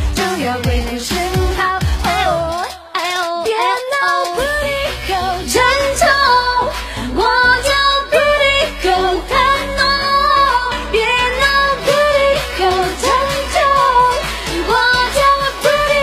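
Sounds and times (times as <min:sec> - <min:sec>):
person singing: 0:00.0 - 0:16.0
pop backing music with bass: 0:00.0 - 0:16.0.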